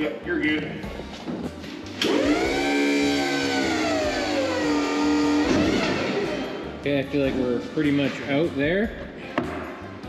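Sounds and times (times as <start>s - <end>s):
forklift lift whine: 2.0s - 6.8s.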